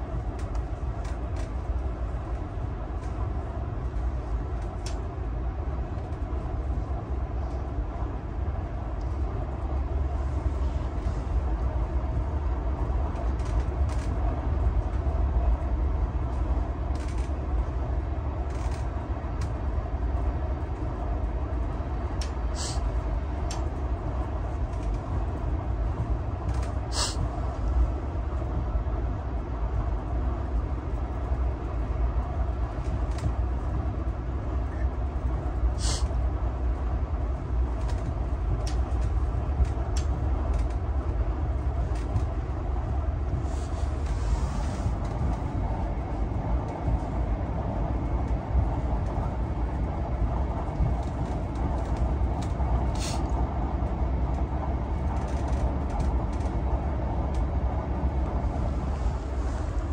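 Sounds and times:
train rumbling on rails: 0:00.0 - 0:59.9.

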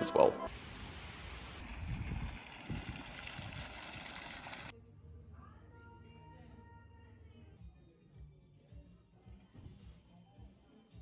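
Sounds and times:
wind buffeting microphone: 0:01.4 - 0:04.6
faint music: 0:04.7 - 0:11.0.

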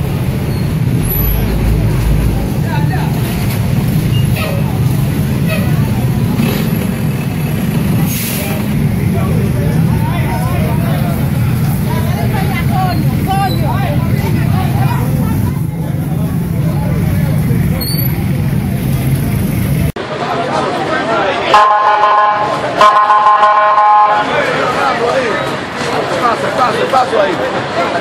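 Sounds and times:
fire engine motor droning: 0:00.0 - 0:19.9
people talking and calling: 0:00.0 - 0:28.0.

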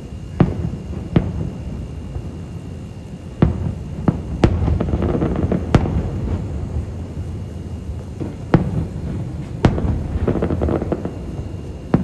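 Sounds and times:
fireworks booming: 0:00.0 - 0:12.0.

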